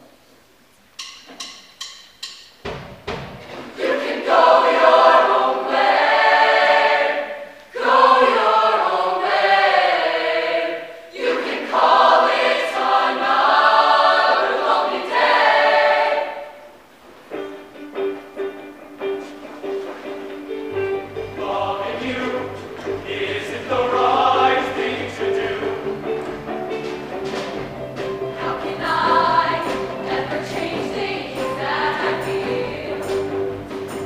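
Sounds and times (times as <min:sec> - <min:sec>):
mixed choir singing chords: 0:03.7 - 0:16.9, 0:20.7 - 0:34.0.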